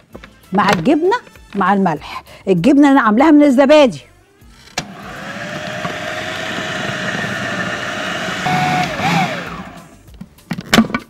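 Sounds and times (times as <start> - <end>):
food processor running: 4.8 - 10.0.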